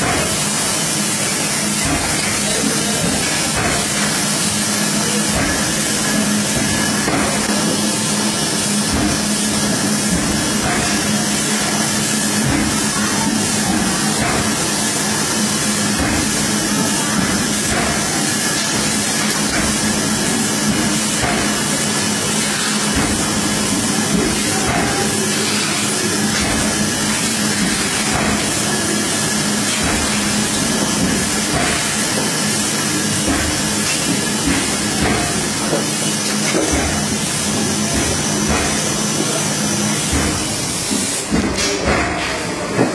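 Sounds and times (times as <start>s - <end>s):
folding machine whirring and hissing: 0.0s - 42.9s.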